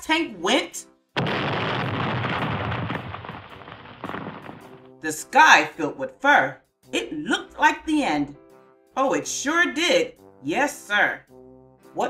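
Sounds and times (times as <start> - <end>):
crackling explosion: 1.2 - 4.9.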